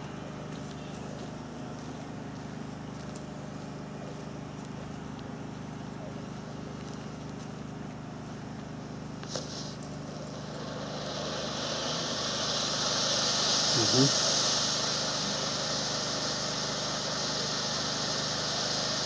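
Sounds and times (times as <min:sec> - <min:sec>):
firework fountain hissing: 0:00.0 - 0:19.0
low motor hum: 0:00.0 - 0:19.0
brief high hiss: 0:09.1 - 0:19.0.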